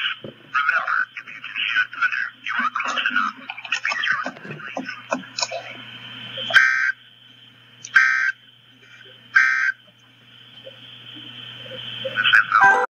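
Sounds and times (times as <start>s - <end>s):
harsh digital buzzes: 4.8s - 12.9s.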